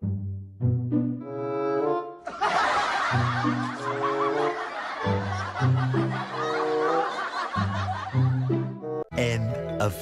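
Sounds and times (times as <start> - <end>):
studio audience laughing: 2.3 - 8.8.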